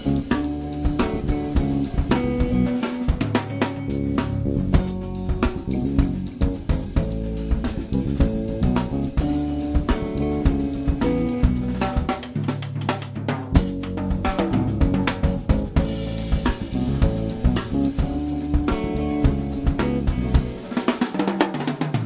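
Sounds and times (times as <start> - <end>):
drum kit playing: 0.0 - 22.0.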